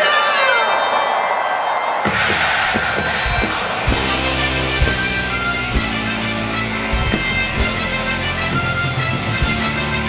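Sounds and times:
crowd cheering: 0.0 - 10.0
live rock band playing: 2.1 - 10.0.

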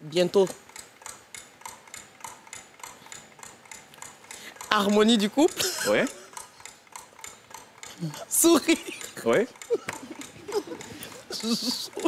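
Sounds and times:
countdown clock ticking: 0.5 - 12.0.

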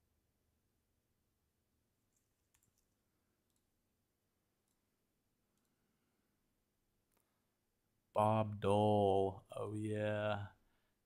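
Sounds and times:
computer mouse clicks: 2.1 - 3.7.

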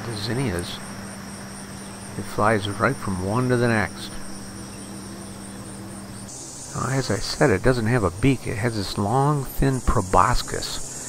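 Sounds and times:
faint low hum: 0.0 - 11.0
insects chirring: 0.0 - 11.0.

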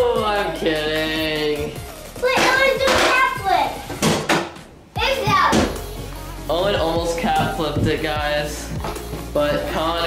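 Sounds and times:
children's excited voices: 2.2 - 3.9, 5.0 - 5.8
sharp knocks: 4.0 - 4.6.

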